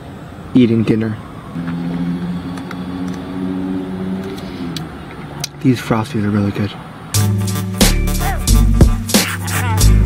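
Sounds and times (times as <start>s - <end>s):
car engine droning: 0.0s - 10.0s.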